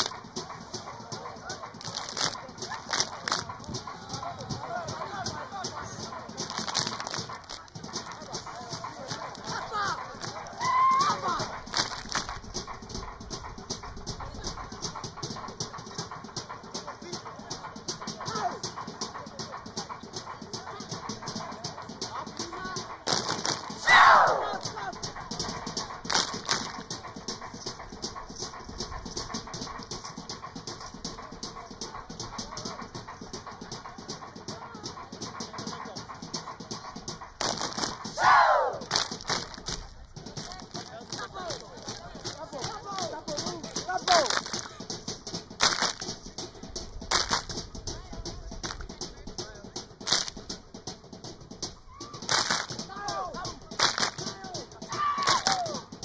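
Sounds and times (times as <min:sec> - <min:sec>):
group clapping and slapping rhythm: 0:00.0 - 0:56.0
voices: 0:00.0 - 0:56.0
high falling shouts: 0:09.5 - 0:11.6, 0:23.8 - 0:24.9, 0:38.2 - 0:39.0, 0:54.9 - 0:55.9.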